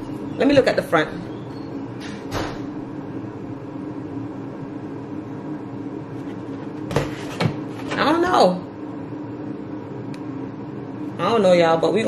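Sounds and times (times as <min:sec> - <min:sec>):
air fryer humming: 0:00.0 - 0:12.0.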